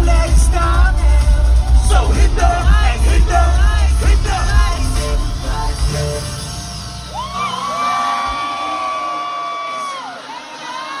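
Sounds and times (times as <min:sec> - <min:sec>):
bass-heavy backing track: 0:00.0 - 0:08.5.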